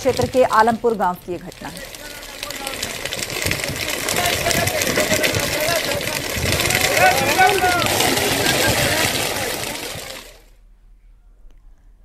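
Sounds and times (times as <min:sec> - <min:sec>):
field fire crackling and hissing: 0:00.0 - 0:10.5.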